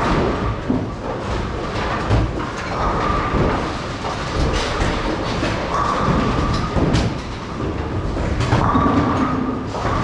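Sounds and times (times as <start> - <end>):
bowling balls rolling on lanes: 0.0 - 10.0.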